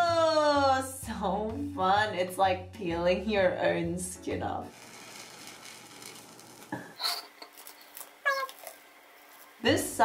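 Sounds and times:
gel mask peeling off skin: 0:04.8 - 0:09.6
high-pitched squeal-like vocal: 0:08.2 - 0:08.8.

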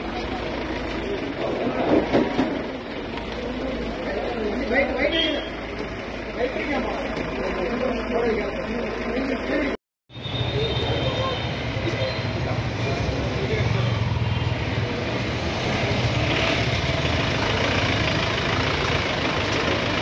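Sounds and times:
engines rumbling: 0:00.0 - 0:20.0
traffic noise: 0:00.0 - 0:20.0.

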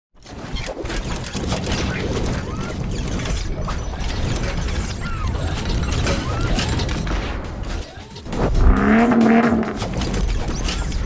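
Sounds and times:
deep rumble: 0:08.3 - 0:10.2.

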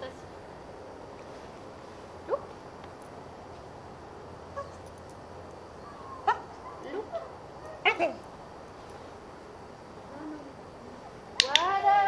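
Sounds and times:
dog yipping and barking: 0:04.6 - 0:04.9, 0:05.8 - 0:08.2.

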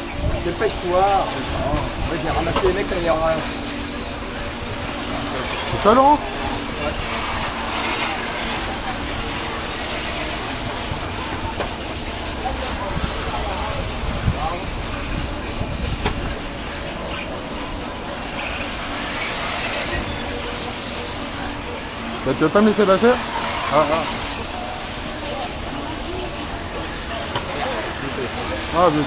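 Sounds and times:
remote control cars racing: 0:00.0 - 0:29.0.

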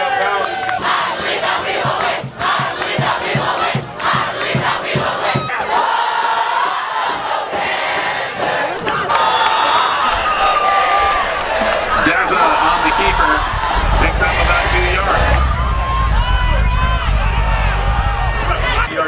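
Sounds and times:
long shouts held together: 0:00.0 - 0:14.0
crowd cheering and yelling: 0:00.0 - 0:19.0
low thumps: 0:00.8 - 0:05.6, 0:10.0 - 0:19.0.

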